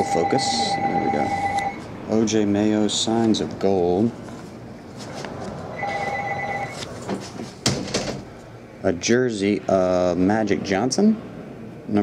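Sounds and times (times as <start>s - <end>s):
electronic telephone ringing: 0.0s - 1.8s, 5.8s - 6.8s.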